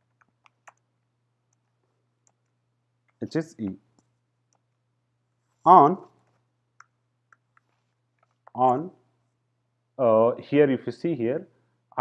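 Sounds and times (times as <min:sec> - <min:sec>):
person speaking: 0:03.1 - 0:04.0, 0:05.5 - 0:06.5, 0:08.3 - 0:09.0.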